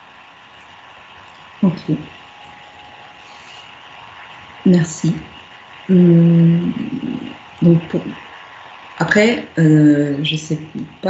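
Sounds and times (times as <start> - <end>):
low background hiss: 0.0 - 3.6, 4.2 - 11.0
faint constant hum: 0.0 - 11.0.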